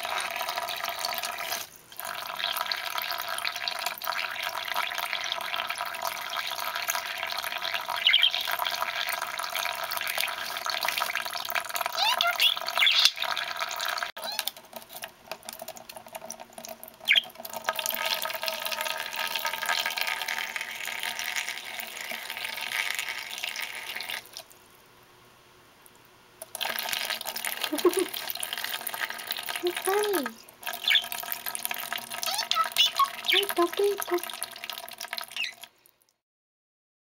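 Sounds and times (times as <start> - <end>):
tap water running into dish: 0.0 - 24.5, 26.4 - 35.7
budgie chirps: 7.9 - 8.5, 11.9 - 13.3, 29.9 - 31.1, 32.2 - 34.2, 35.3 - 35.6.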